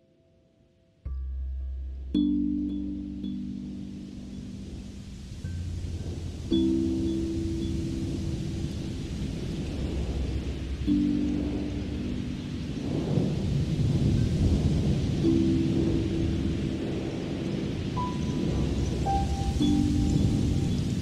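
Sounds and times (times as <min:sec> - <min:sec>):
ambient music: 0:00.0 - 0:21.0
sustained low chord: 0:01.0 - 0:21.0
rain hiss: 0:01.2 - 0:21.0
thunder rumbling: 0:01.8 - 0:21.0.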